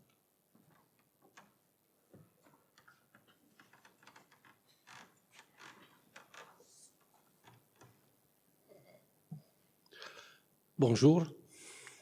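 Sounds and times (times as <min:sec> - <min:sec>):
faint clicks and knocks: 0:00.0 - 0:08.2.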